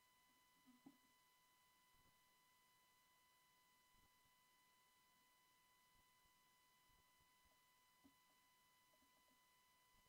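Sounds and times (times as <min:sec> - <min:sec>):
faint steady high tone: 0:00.0 - 0:10.0.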